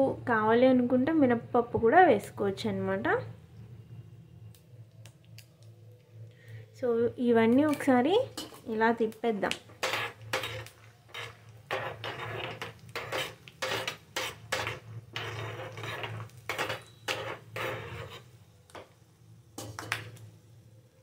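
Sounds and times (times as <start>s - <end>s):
food frying in oil: 7.7s - 18.4s
steel spoon scraping pan: 7.8s - 8.8s, 9.7s - 18.4s.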